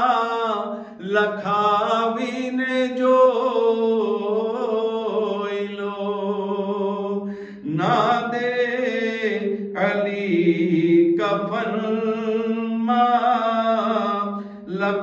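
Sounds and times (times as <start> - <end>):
man singing into a microphone: 0.0 - 15.0.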